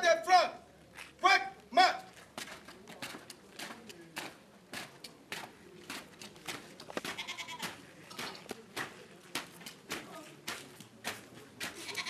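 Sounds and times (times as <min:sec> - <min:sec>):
boots marching on paving: 0:00.9 - 0:12.0.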